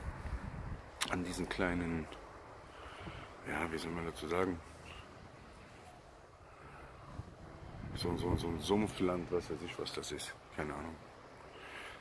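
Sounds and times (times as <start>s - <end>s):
wind rumbling on microphone: 0.0s - 4.2s, 6.4s - 9.5s.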